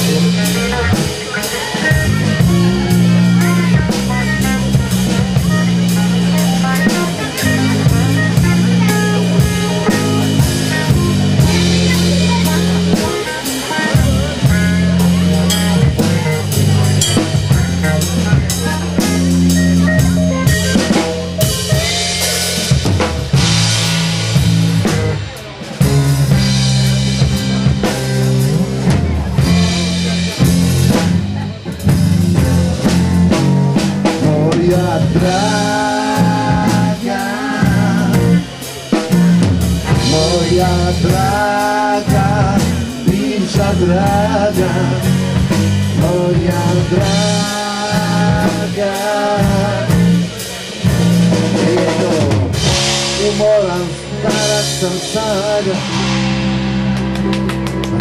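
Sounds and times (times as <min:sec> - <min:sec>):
melodic lines: 0:00.0 - 0:33.3
blues-rock band playing: 0:00.0 - 0:58.0
drum kit with snare rimshots: 0:00.0 - 0:58.0.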